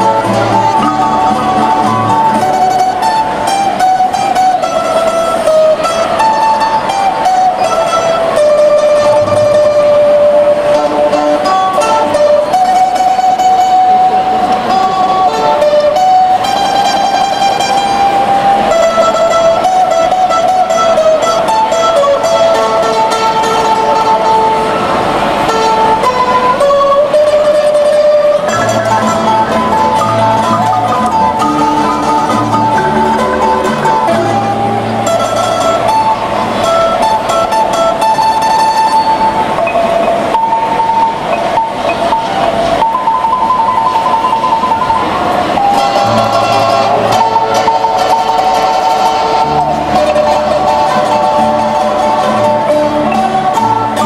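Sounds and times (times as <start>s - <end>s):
string ensemble tremolo picking: 0.0s - 54.0s.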